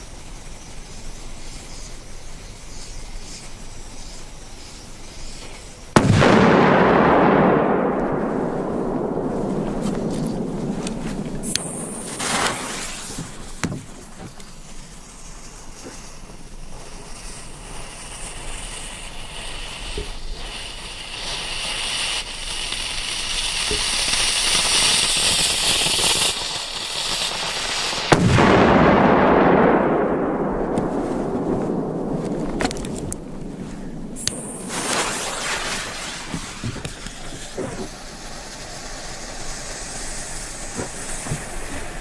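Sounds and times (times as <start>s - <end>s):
firecracker bang: 5.9s - 15.0s, 27.1s - 42.0s
rumbling echo: 6.0s - 14.2s, 28.2s - 37.1s
fuse hissing and fizzing: 32.1s - 42.0s.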